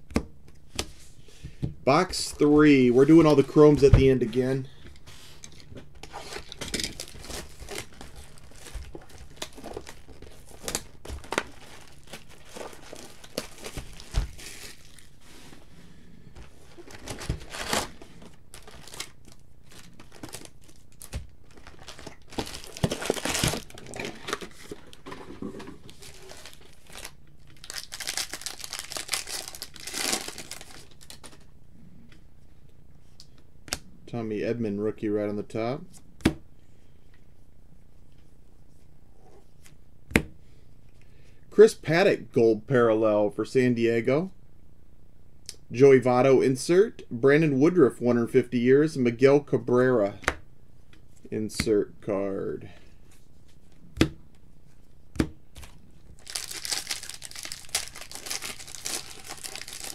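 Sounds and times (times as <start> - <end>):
foil wrappers tearing and crinkling: 6.0 - 15.2, 16.6 - 25.0, 25.9 - 31.4, 56.2 - 59.9.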